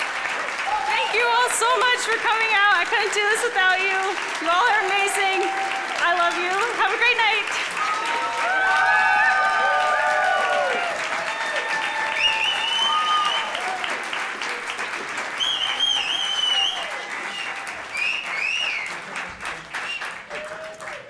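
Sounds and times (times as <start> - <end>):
audience applauding and cheering: 0.0 - 21.0.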